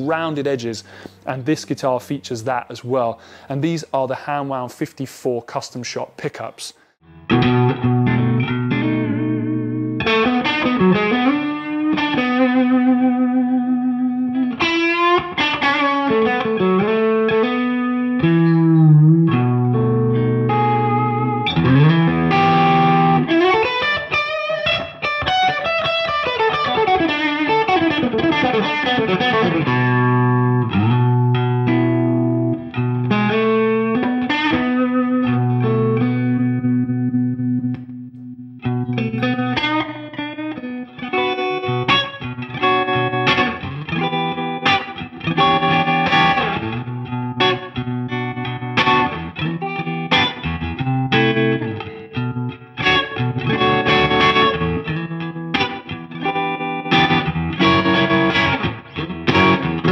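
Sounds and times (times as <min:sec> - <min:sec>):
electric guitar through amplifier: 0:07.1 - 0:59.9.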